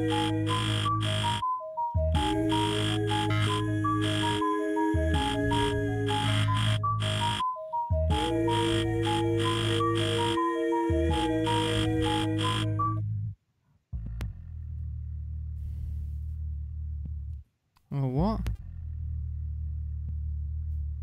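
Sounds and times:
steady bass: 0.0s - 1.4s, 2.0s - 7.4s, 8.0s - 13.4s, 14.0s - 17.5s, 18.2s - 21.0s
high stepping melody: 0.0s - 13.0s
looped beatbox vocals: 2.2s - 6.8s.

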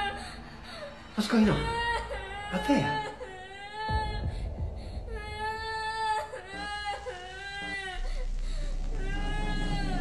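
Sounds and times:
girl crying and wailing: 1.6s - 8.3s
low steady rumble: 3.5s - 10.0s.

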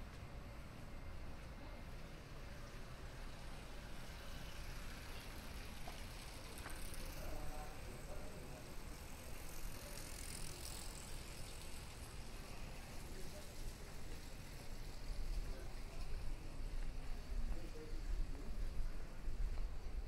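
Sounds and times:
bicycle rolling past: 0.0s - 20.0s
low street rumble: 0.0s - 20.0s.

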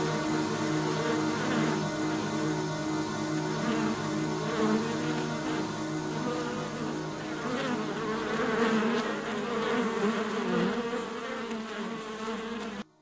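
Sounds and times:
buzzing insect-like drone: 0.0s - 13.0s.

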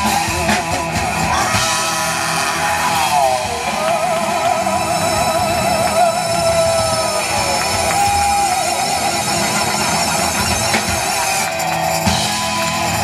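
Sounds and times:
bass guitar: 0.0s - 13.0s
drum kit: 0.0s - 13.0s
electric guitars: 0.0s - 13.0s.

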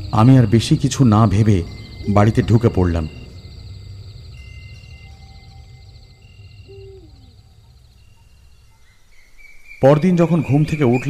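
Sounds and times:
low rumble: 0.0s - 8.7s
high insect-like trill: 0.0s - 11.0s
short high bird-like calls: 5.0s - 9.8s.

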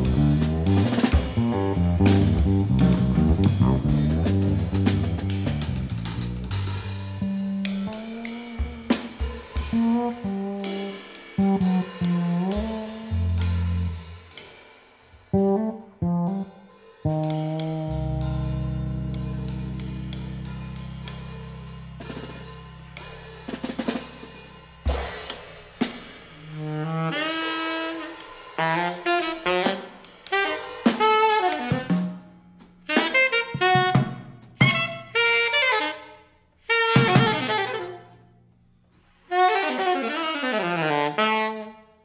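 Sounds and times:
plucked electric bass: 0.0s - 8.9s, 11.4s - 14.1s, 15.4s - 24.7s
drum kit hits: 0.0s - 14.5s, 17.0s - 26.2s
saxophone: 6.8s - 14.3s, 26.4s - 38.5s, 39.2s - 42.0s.

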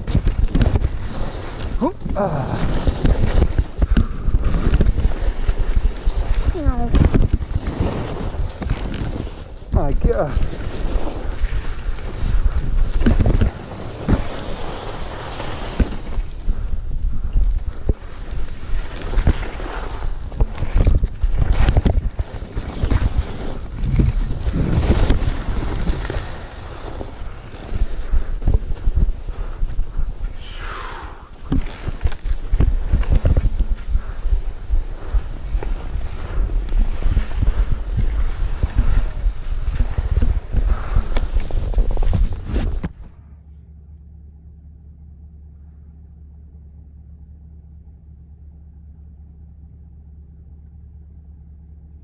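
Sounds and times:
wind buffeting microphone: 0.0s - 14.3s, 15.8s - 43.0s
skis scraping over snow: 0.0s - 43.2s.

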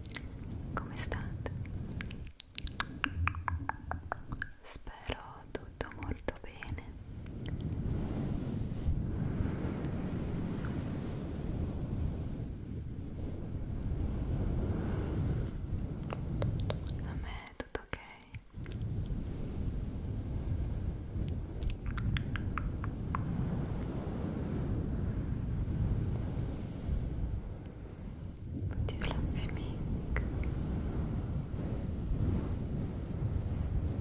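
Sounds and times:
soft whispery mouth sounds: 0.0s - 7.7s, 15.4s - 19.0s, 21.6s - 23.2s, 28.6s - 30.6s.

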